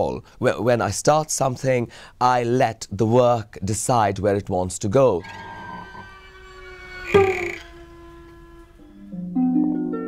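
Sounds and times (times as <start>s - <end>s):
soft background music: 8.5s - 10.0s.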